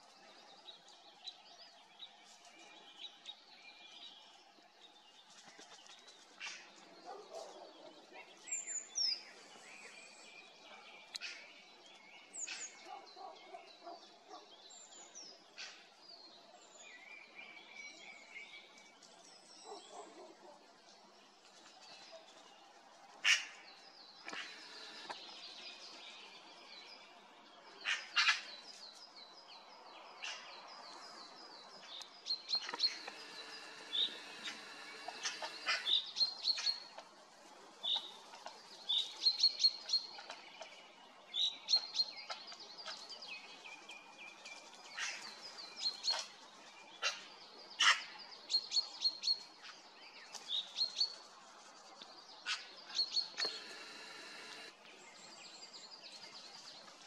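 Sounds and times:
birds chirping and trilling: 0:23.3 - 0:37.1, 0:52.4 - 0:56.0
sharp bird calls: 0:24.2 - 0:25.7, 0:32.0 - 0:37.0, 0:52.4 - 0:54.7.

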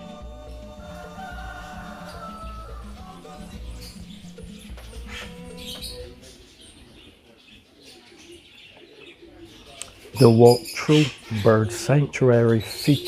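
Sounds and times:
background music: 0:00.0 - 0:06.7
faint bird calls: 0:01.2 - 0:13.0.

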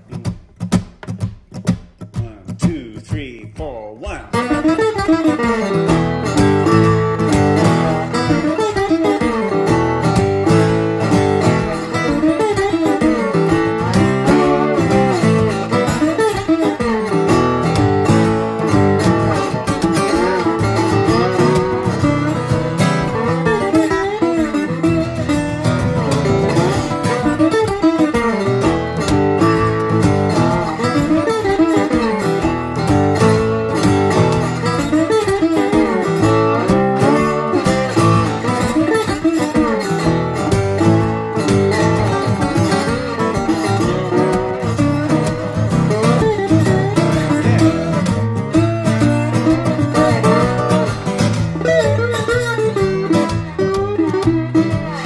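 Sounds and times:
acoustic guitar fingerpicking: 0:00.0 - 0:55.0
resonator guitar playing blues: 0:00.0 - 0:55.0.

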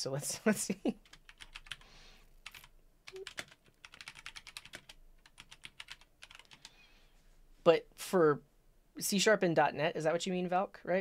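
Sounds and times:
faint computer keyboard typing: 0:01.0 - 0:06.7.

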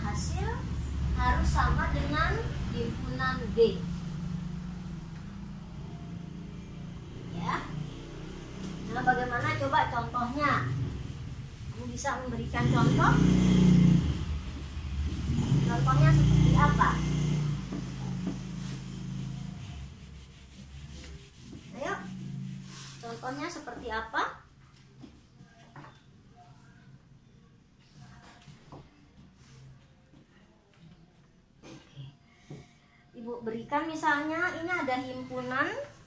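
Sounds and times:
eraser rubbing on whiteboard: 0:13.8 - 0:23.8.

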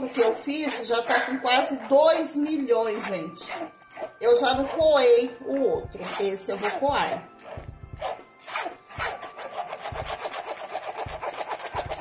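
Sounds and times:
spoon scraping through a sieve: 0:00.0 - 0:12.0.

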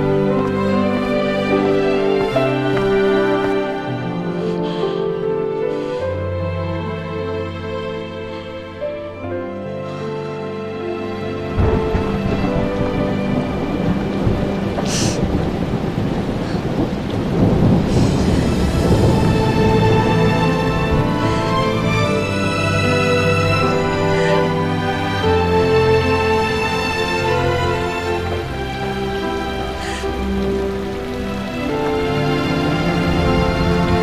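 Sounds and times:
heavy rain pouring: 0:00.0 - 0:34.0
soft music: 0:00.0 - 0:34.0
thunder rumbling: 0:11.1 - 0:34.0
sharp thunder crack: 0:11.5 - 0:21.8.

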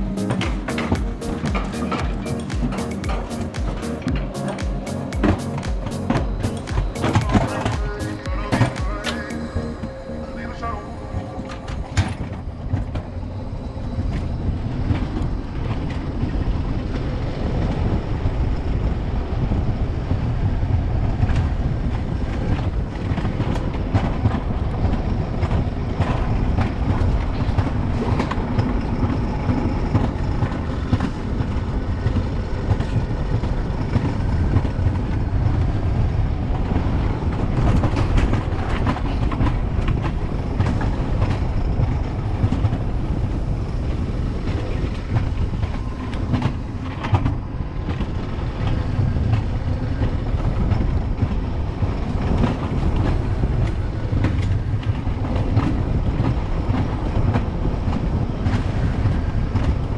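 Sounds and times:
music: 0:00.0 - 0:12.2
coaster wheels rumbling on rails: 0:00.0 - 0:59.9
wind noise: 0:11.0 - 0:59.9.

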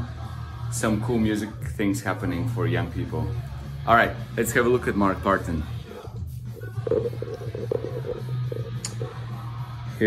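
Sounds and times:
guitar background music: 0:01.0 - 0:10.0.

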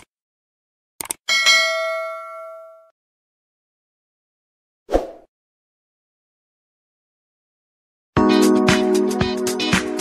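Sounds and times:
notification bell ding: 0:01.3 - 0:02.9.

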